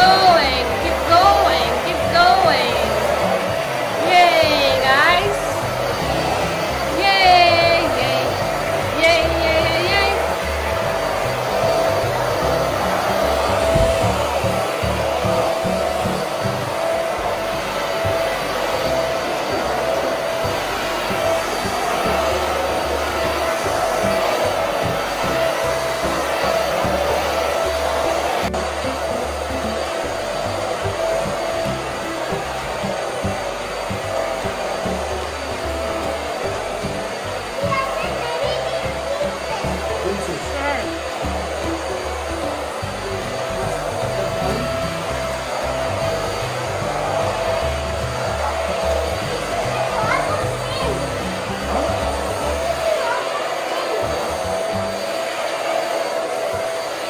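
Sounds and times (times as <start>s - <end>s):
stick vacuum cleaner running: 0.0s - 57.0s.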